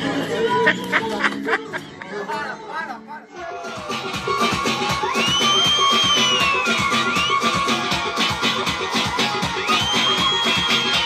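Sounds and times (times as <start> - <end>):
fast percussion beat: 3.7 - 11.0.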